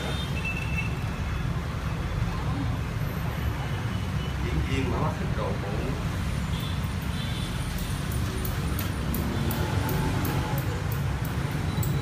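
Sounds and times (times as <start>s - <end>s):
motorbike traffic rumble: 0.0s - 12.0s.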